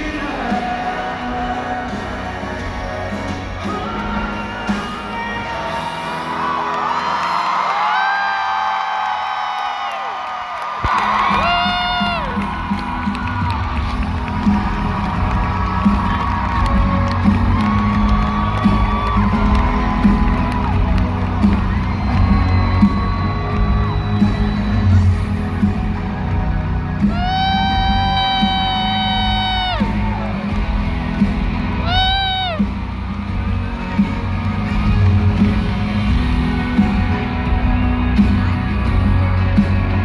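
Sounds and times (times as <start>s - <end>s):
live band playing: 0.0s - 7.6s, 10.8s - 40.0s
crowd cheering and whooping: 3.6s - 40.0s.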